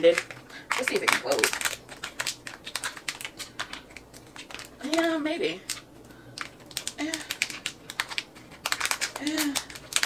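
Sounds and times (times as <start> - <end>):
packaging crinkling: 0.0 - 10.0
plastic item clicking: 0.1 - 5.8, 6.4 - 10.0.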